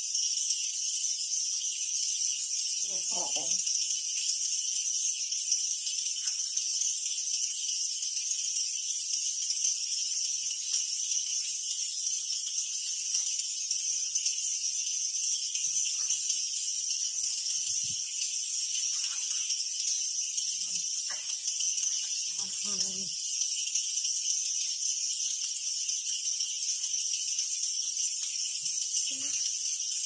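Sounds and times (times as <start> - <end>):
insect chorus buzzing: 0.0 - 30.0.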